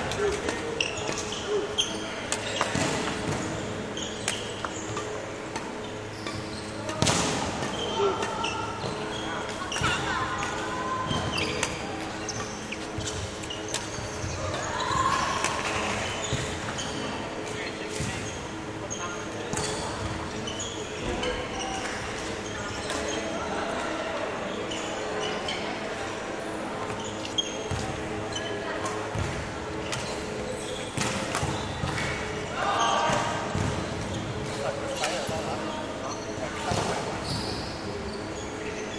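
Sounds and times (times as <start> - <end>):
court shoes squeaking: 0.0 - 38.9
murmur of voices: 0.0 - 38.9.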